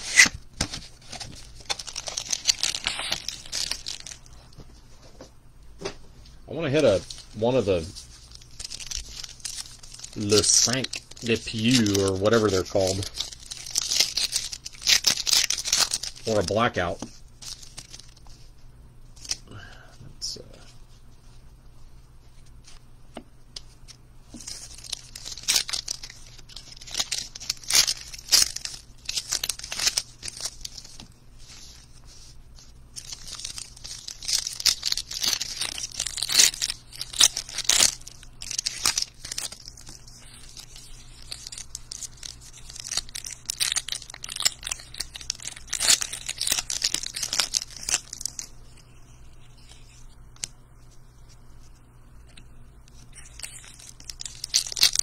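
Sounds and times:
card handling: 0.0s - 4.6s, 6.8s - 18.4s, 22.4s - 50.6s
thin plastic crinkling: 0.0s - 4.7s, 6.7s - 18.5s, 23.5s - 55.0s.

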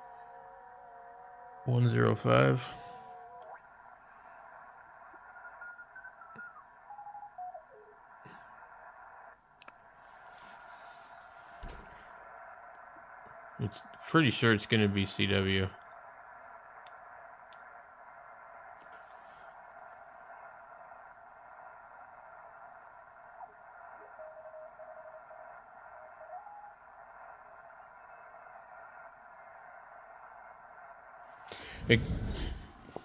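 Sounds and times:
radio band noise hiss: 1.2s - 33.0s.

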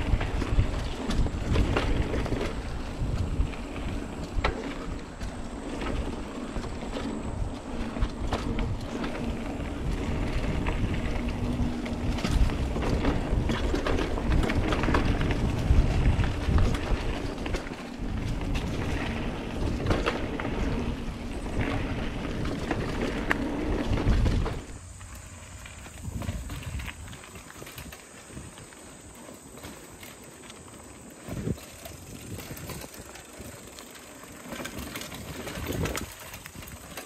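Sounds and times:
wind buffeting microphone: 0.0s - 29.1s, 31.1s - 37.0s
bike clicks: 0.0s - 37.0s
mountain bike rumble and rattle: 0.0s - 37.0s.

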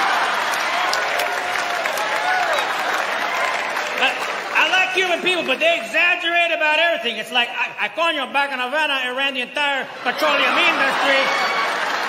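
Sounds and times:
audience applauding and cheering: 0.0s - 6.8s, 10.0s - 12.0s.

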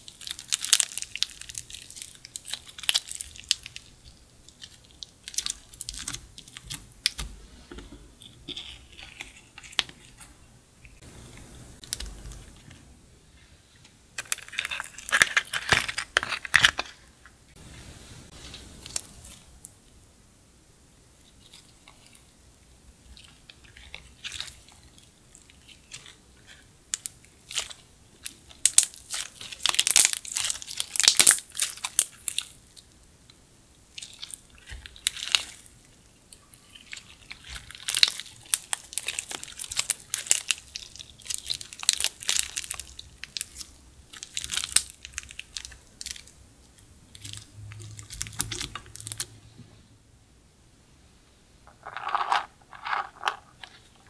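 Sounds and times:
slime crackling and popping: 0.0s - 7.3s, 23.2s - 32.8s, 33.9s - 35.7s, 36.6s - 49.3s.

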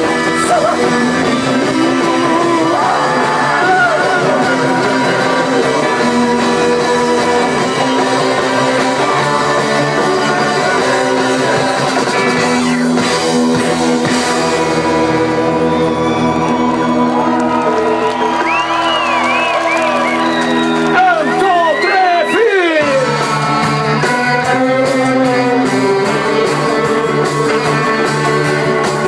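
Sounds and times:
drum kit: 0.0s - 29.0s
electric guitars: 0.0s - 29.0s
rock band playing: 0.0s - 29.0s.

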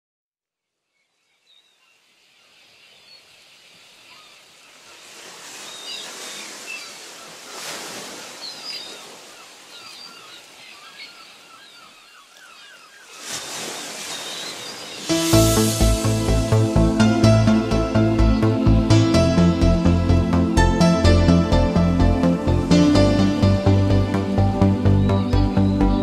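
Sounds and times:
surf washing: 3.2s - 11.8s, 12.4s - 16.6s
seagulls calling: 4.1s - 16.2s, 22.4s - 26.0s.

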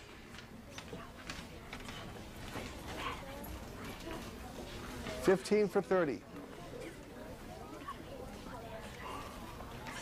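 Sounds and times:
children talking quietly: 0.0s - 10.0s.

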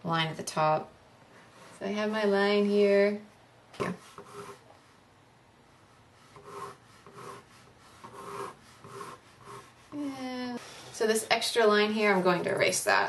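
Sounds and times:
pencil sketching strokes: 3.8s - 5.0s, 5.8s - 10.0s.

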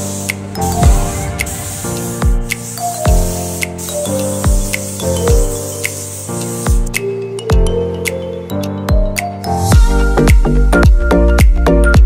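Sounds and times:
paint spray gun hissing: 0.0s - 7.2s
music with thudding beat: 0.2s - 7.8s, 8.9s - 12.0s.

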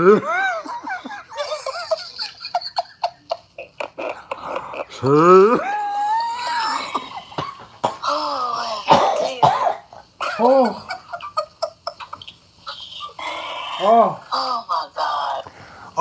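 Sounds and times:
person laughing hard: 0.0s - 8.9s, 10.2s - 14.1s
person exclaiming oh: 5.6s - 7.0s.

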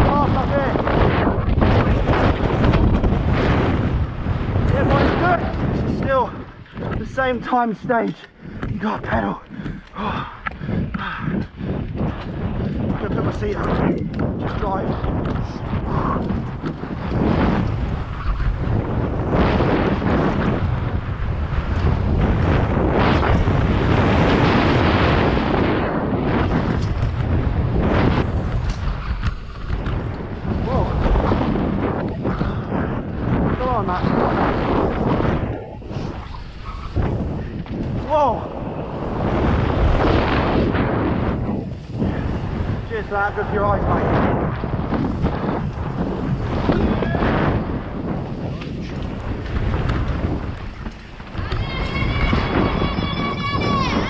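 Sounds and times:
bike tyre noise: 0.0s - 54.0s
wind rushing over microphone: 0.0s - 54.0s.

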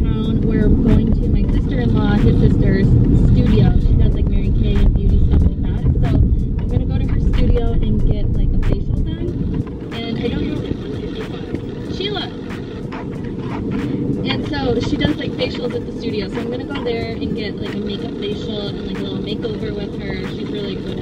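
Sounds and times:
woman talking: 0.0s - 12.4s, 13.7s - 21.0s
car road and engine rumble: 0.0s - 21.0s.

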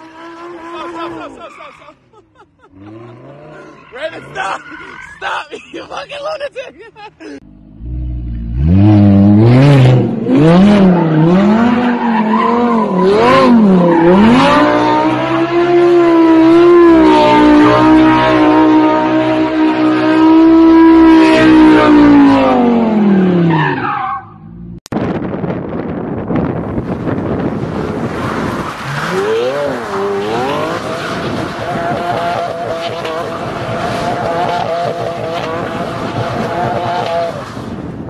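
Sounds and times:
sports car engine revving: 7.5s - 11.8s.

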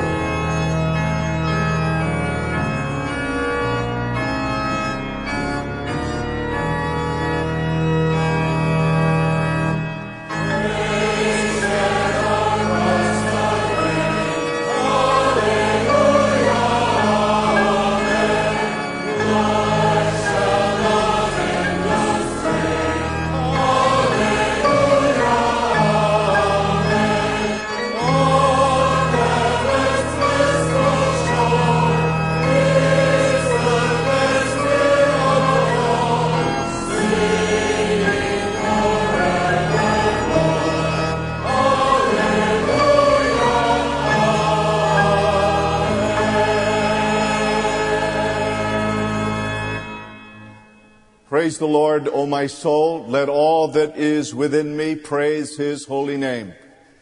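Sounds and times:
church choir singing hymn: 0.0s - 50.2s
organ sustained bass notes: 0.0s - 56.5s.

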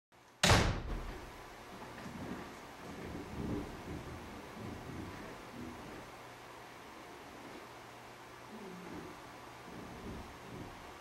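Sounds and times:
low steady background noise: 0.2s - 11.0s.

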